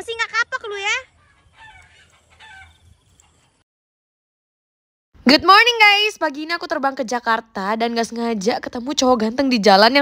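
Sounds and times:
chicken clucking: 1.1 - 3.6.

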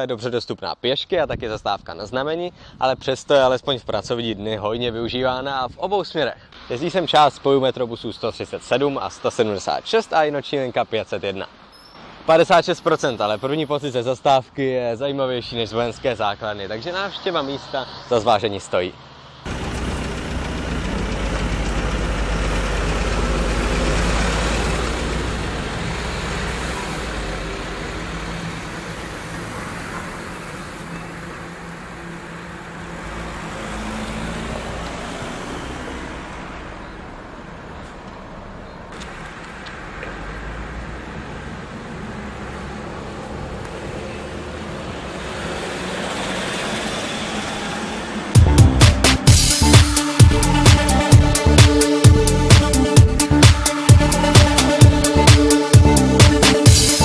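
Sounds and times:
bus diesel engine rumbling: 6.4 - 57.0
cars driving past: 6.6 - 14.6, 15.3 - 57.0.

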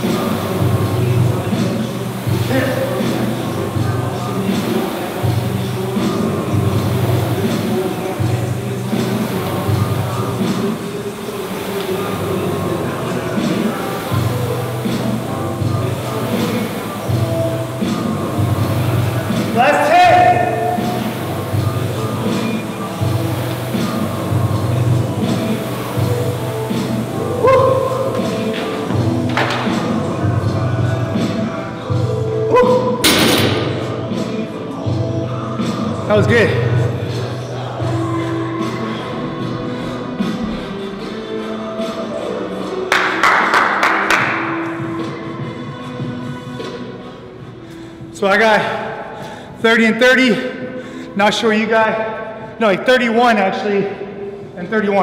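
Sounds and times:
rowing machine flywheel whirring: 0.0 - 50.0
background music with singing: 0.0 - 55.0.

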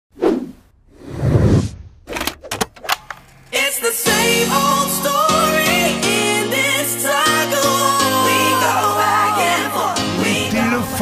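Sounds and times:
whoosh sound effect: 0.2 - 2.0.

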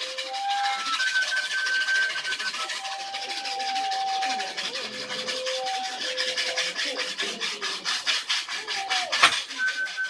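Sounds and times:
high whistle-like tone: 0.0 - 6.5, 8.9 - 10.0
washboard scraping rhythmically: 0.0 - 10.0.

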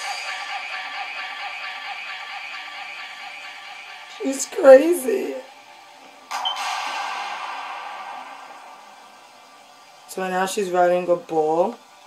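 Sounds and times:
hissing noise burst: 6.3 - 10.1.

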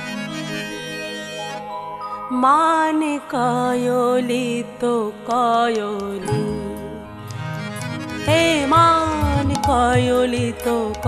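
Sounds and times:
woman singing wavering phrases: 2.3 - 7.0.

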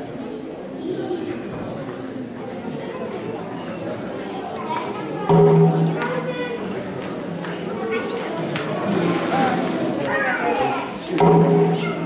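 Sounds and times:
adults and children chattering: 0.0 - 12.0.

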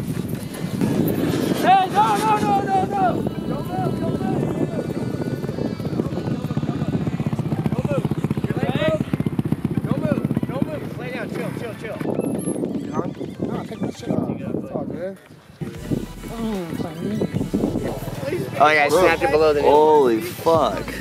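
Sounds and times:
motorcycle engine idling: 3.0 - 12.7.

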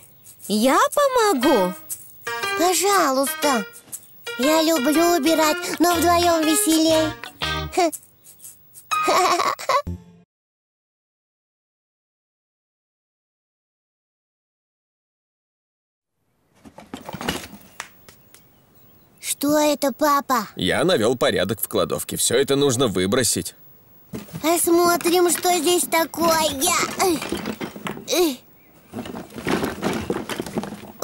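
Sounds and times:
toys rattling in a box: 24.5 - 31.0.

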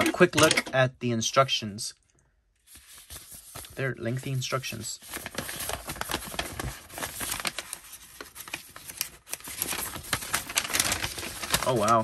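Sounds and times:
paper rustling and crinkling: 2.6 - 12.0.

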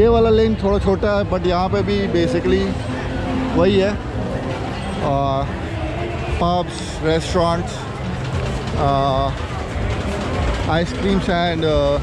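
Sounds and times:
crowd noise: 0.0 - 12.0
low street rumble: 0.0 - 12.0.

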